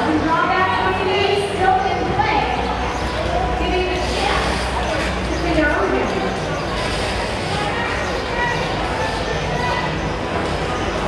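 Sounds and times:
echoing voices in a hall: 0.0 - 11.0.

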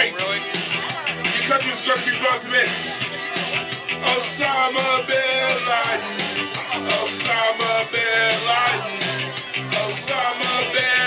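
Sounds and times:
electronic keyboard rock and roll music: 0.0 - 11.0.

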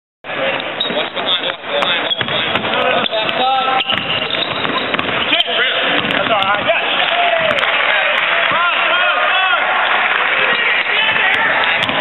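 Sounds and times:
voices and chatter: 0.3 - 12.0
sneaker squeaks on hardwood: 0.7 - 6.8.

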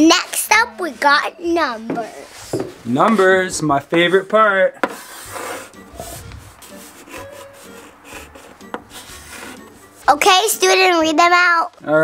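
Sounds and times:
chalk scratching on chalkboard: 0.0 - 10.0
chalk tapping on chalkboard: 1.8 - 3.3, 4.8 - 5.8, 6.6 - 9.8.

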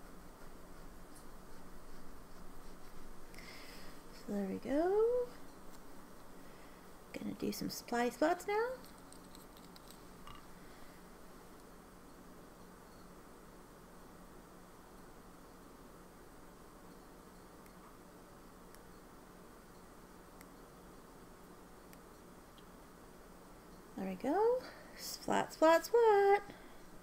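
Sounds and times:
low room hum: 0.0 - 27.0.

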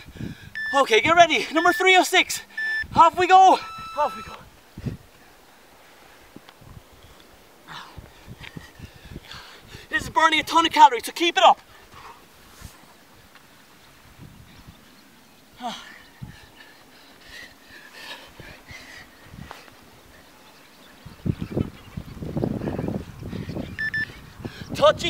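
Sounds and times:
man breathing hard: 0.0 - 0.6, 7.0 - 10.0, 15.6 - 19.8, 22.5 - 24.8.

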